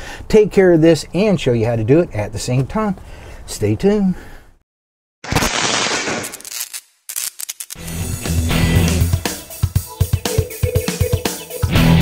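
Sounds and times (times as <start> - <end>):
music with deep bass line: 7.8 - 12.0.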